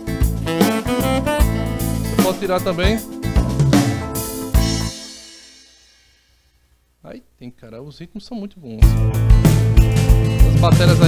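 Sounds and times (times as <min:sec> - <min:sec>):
keyboard accompaniment with drums: 0:00.0 - 0:06.0, 0:08.8 - 0:11.0
drum fill: 0:00.2 - 0:06.3, 0:08.8 - 0:11.0.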